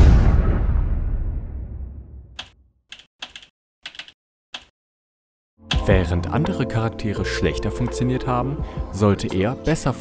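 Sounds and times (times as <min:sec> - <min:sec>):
loud deep boom: 0:00.0 - 0:02.4
keystroke clicks: 0:02.4 - 0:04.7.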